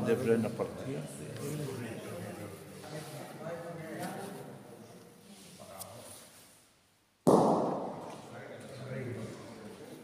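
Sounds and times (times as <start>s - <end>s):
bocce ball knock with echo: 7.3s - 8.3s.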